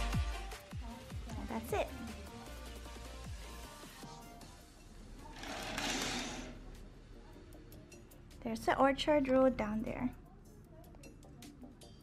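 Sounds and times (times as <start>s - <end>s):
curtain swishing along track: 5.3s - 6.6s.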